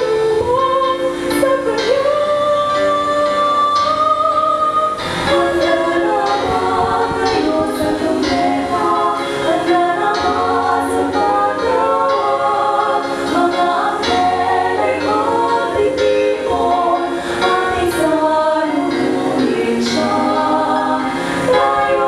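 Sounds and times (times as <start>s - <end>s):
women singing in harmony: 0.0s - 22.0s.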